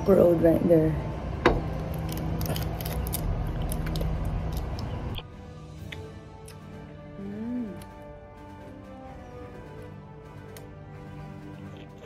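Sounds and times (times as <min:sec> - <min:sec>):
eggshell cracking: 0:01.7 - 0:05.3.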